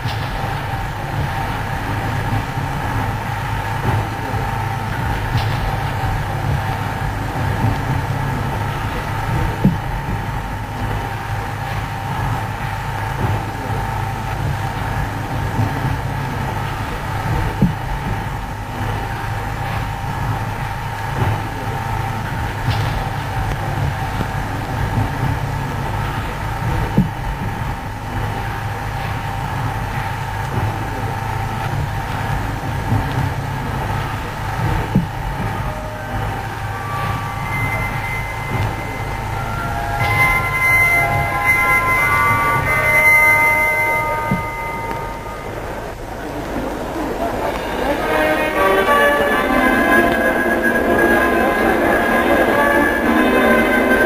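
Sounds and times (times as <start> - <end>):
high music notes: 0.0 - 54.0
old film soundtrack hum: 0.0 - 54.0.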